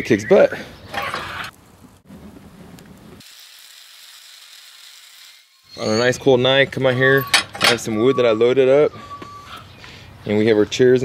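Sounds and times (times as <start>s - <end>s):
wood fire crackling in stove: 1.0s - 3.2s.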